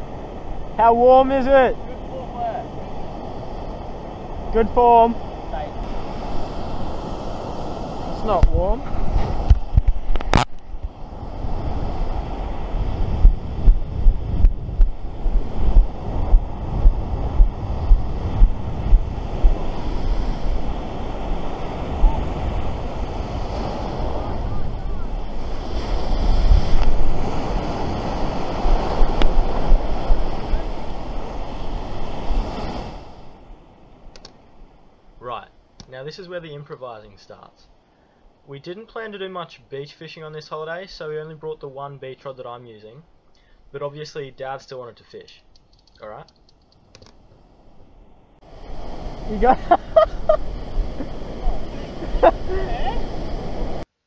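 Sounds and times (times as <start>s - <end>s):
wind buffeting microphone: 0.0s - 34.9s, 47.2s - 53.8s
surf washing up beach: 0.0s - 37.5s, 47.3s - 53.9s
sharp click: 34.1s - 34.4s, 45.5s - 47.2s.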